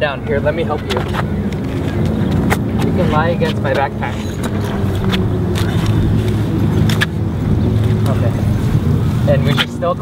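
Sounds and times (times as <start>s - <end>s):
low outdoor rumble: 0.0s - 10.0s.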